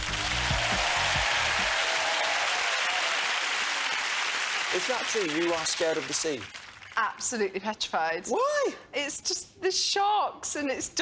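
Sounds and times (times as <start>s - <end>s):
studio audience applauding: 0.0s - 7.2s.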